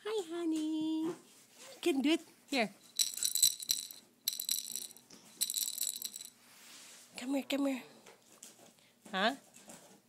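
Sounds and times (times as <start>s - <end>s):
toy rattle jingling: 2.8s - 6.4s.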